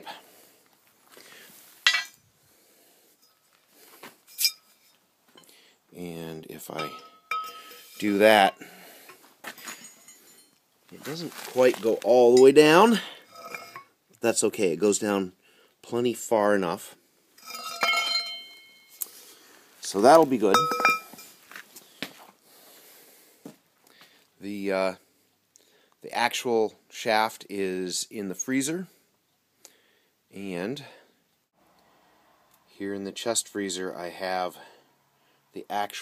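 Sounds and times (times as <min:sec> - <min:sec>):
metal pipe clinking on axle: 0:01.8 - 0:02.2, 0:03.2 - 0:03.6, 0:04.3 - 0:05.5, 0:06.6 - 0:08.7, 0:09.6 - 0:10.6, 0:12.3 - 0:13.9, 0:17.4 - 0:19.1, 0:20.5 - 0:21.4.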